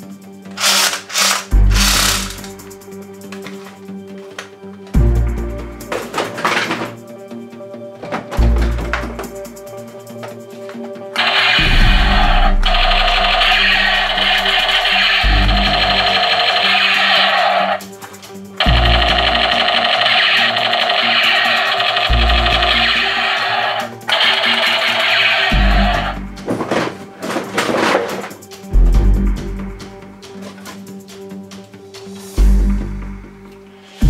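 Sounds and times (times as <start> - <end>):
background music with steady beat: 0.0 - 34.0
toy machine gun rapid-fire sound: 0.6 - 2.5, 11.2 - 17.8, 18.6 - 26.1.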